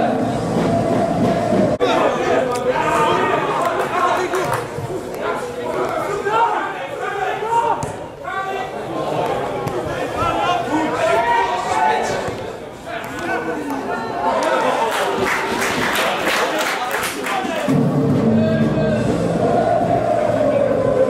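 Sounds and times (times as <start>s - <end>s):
babble of overlapping voices: 0.0s - 21.0s.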